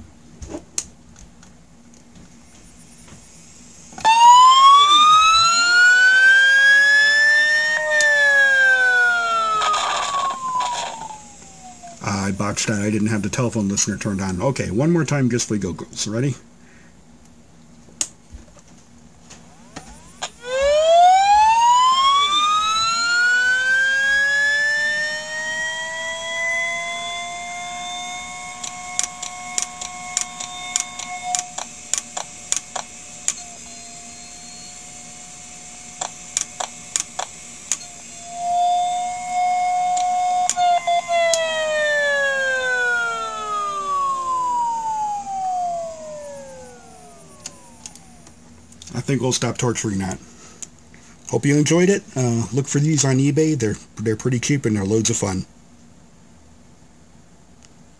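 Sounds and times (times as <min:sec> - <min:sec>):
electromagnetic hum: 0:01.2 - 0:16.8, 0:17.8 - 0:53.6
hard drive motor whine: 0:02.1 - 0:14.9, 0:19.2 - 0:50.2.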